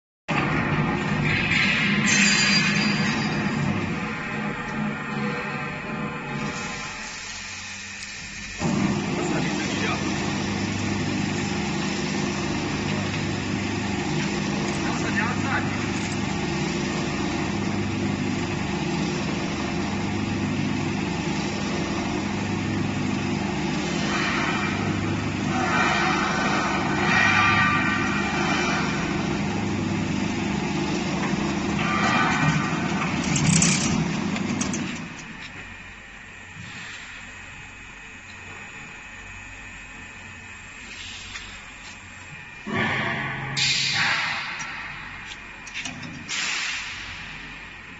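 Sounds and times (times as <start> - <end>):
coiling machine humming and throbbing: 0.3 - 45.9.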